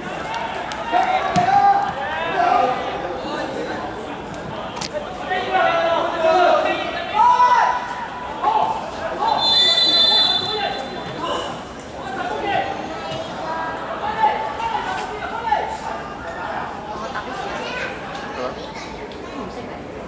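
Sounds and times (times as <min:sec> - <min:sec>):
people talking and calling out: 0:00.0 - 0:20.0.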